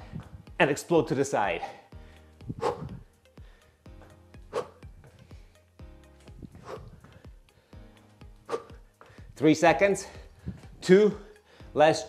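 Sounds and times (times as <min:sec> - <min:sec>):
workout music: 0:00.0 - 0:12.0.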